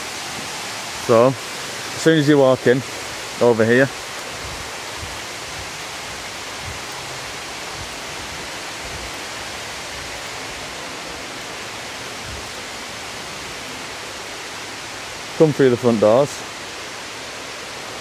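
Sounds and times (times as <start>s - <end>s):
steady hiss: 0.0s - 18.0s.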